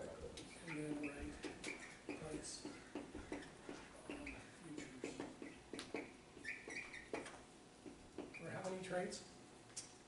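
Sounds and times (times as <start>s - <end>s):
marker squeaking on whiteboard: 0.1s - 8.8s.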